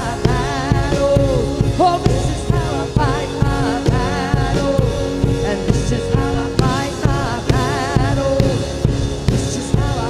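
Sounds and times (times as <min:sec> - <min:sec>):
drum kit beat: 0:00.0 - 0:10.0
electric guitar: 0:00.0 - 0:10.0
keyboard: 0:00.0 - 0:10.0
woman singing: 0:00.0 - 0:10.0.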